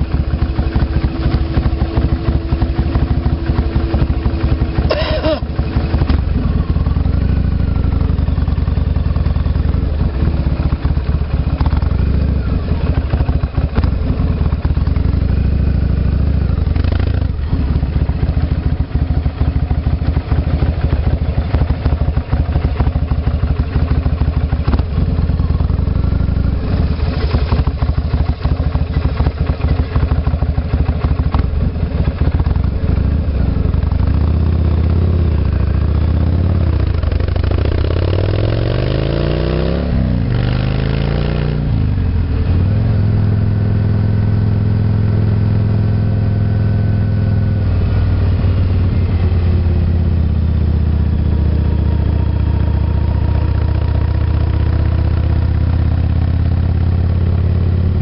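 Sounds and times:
motorcycle engine running: 0.0 - 58.0.

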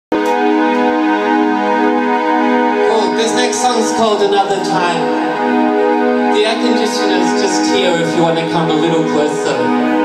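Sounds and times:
sustained synthesizer chord: 0.1 - 10.0.

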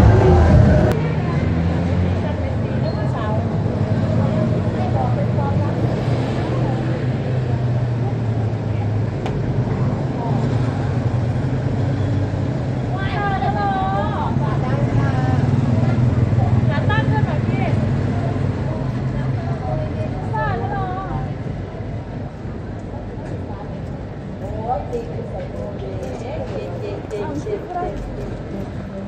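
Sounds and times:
motorbikes passing: 0.0 - 29.0
vehicle engines: 0.0 - 29.0.

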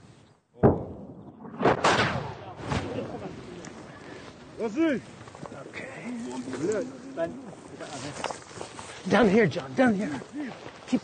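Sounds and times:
artillery shell explosions: 0.6 - 3.1.

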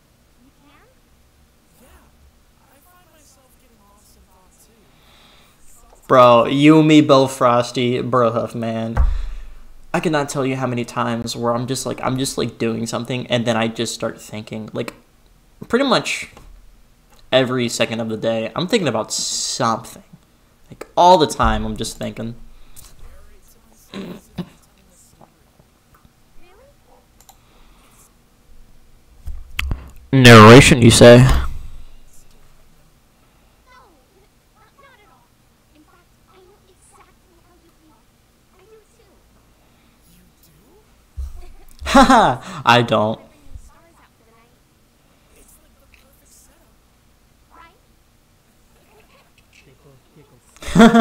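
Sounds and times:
computer mouse clicks: 27.2 - 27.4.

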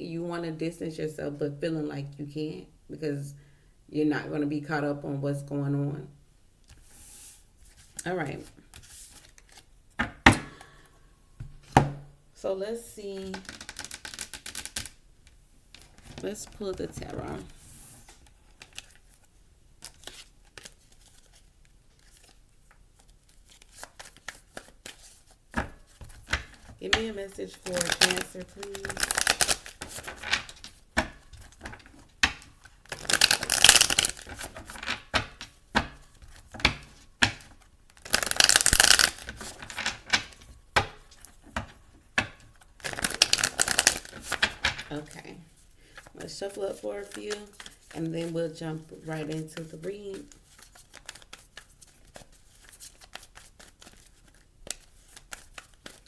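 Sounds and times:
cards clattering while shuffled: 13.2 - 15.0, 23.0 - 44.9, 49.2 - 56.0
card decks clicking on wooden table: 13.3 - 14.9, 27.8 - 36.0, 36.6 - 41.0.

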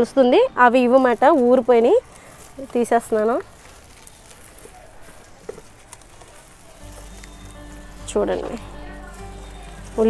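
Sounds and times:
soil and roots rustling: 0.0 - 10.0
background music with held tones: 6.8 - 10.0.

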